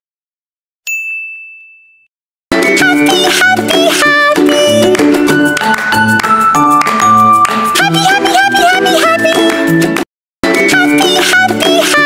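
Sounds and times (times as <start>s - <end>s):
notification bell ding: 0.9s - 2.1s, 6.0s - 7.9s.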